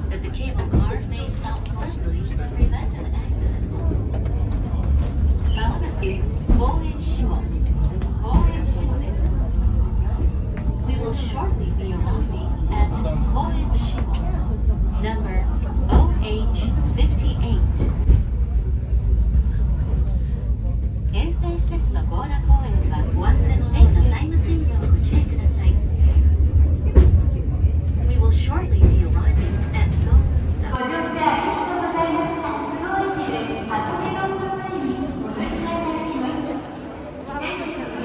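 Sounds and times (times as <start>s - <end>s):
steady low rumble: 0.0s - 30.8s
passengers talking quietly: 0.0s - 38.0s.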